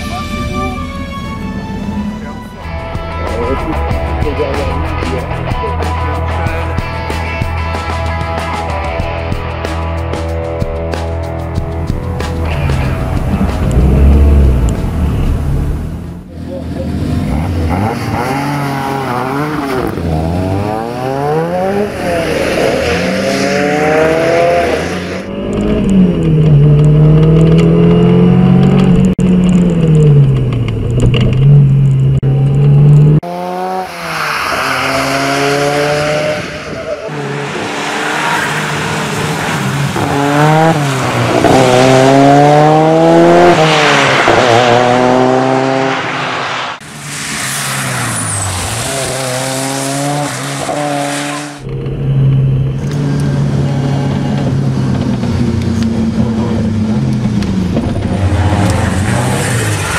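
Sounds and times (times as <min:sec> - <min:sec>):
turbocharged engine accelerating hard: 0:12.4 - 0:59.9.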